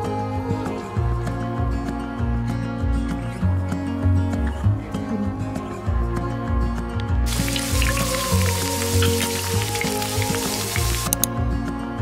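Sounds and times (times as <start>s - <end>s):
background music: 0.0s - 12.0s
eggs sizzling in oil: 7.3s - 11.3s.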